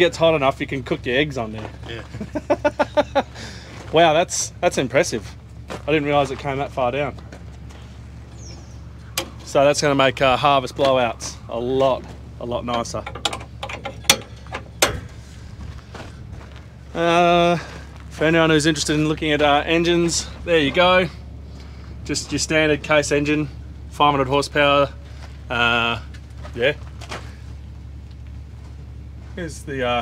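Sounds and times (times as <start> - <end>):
low mechanical hum: 0.0 - 30.0
metal latch clicks: 12.7 - 15.2.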